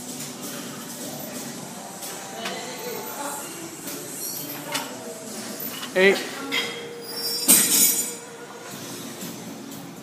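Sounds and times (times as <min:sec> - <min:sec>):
metal scraping on metal: 0:04.1 - 0:08.2.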